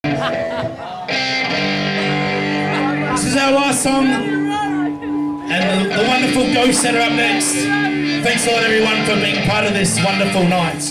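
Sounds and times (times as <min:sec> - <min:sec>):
electric guitar chords ringing: 0:00.0 - 0:10.9.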